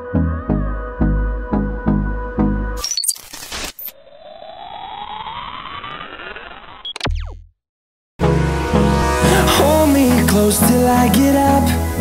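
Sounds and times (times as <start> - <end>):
glitchy digital static: 2.8 - 7.4
electronic sweep of gliding tones: 3.8 - 7.4.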